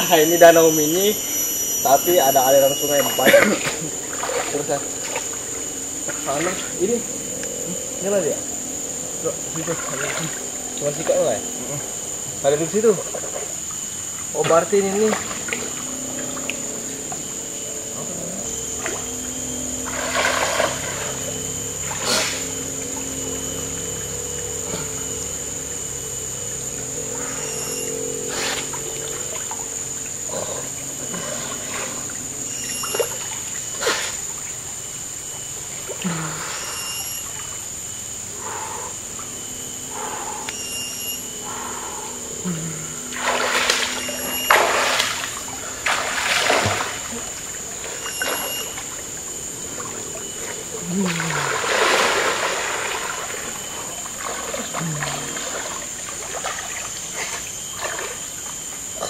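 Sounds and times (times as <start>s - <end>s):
water splashing: 2.6s - 8.3s, 9.3s - 11.8s, 12.6s - 23.2s, 41.4s - 59.0s.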